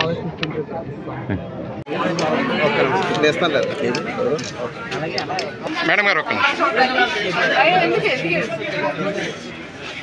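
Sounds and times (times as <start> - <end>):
crowd of people talking: 0.0 - 10.0.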